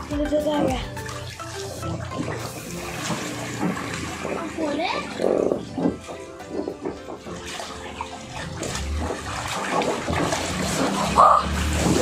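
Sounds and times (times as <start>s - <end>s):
background music: 0.0s - 12.0s
water sloshing and splashing: 0.0s - 12.0s.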